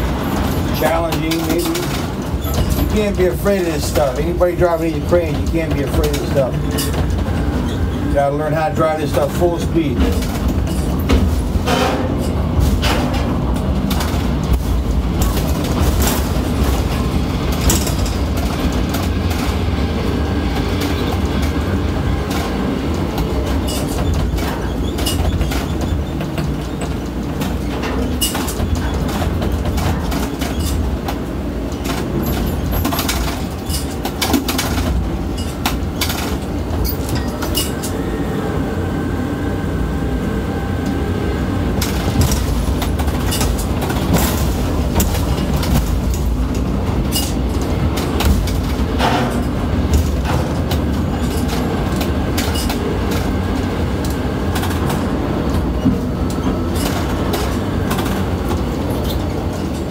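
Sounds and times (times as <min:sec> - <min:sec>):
rattles and sharp knocks: 0:00.0 - 0:37.9, 0:41.7 - 0:59.9
crane rumble: 0:00.0 - 0:59.9.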